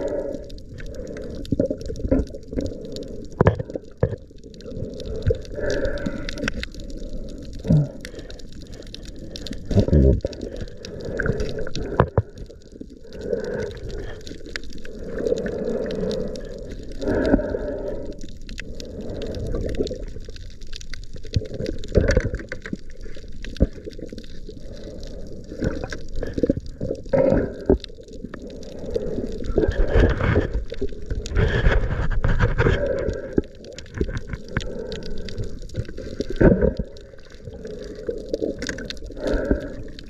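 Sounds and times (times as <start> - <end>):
underwater gurgling and sloshing: 0.0 - 40.0.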